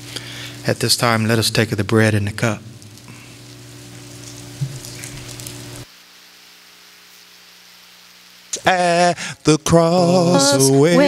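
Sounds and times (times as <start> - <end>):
low electrical hum: 0.0 - 11.0
sound system hiss: 0.0 - 11.0.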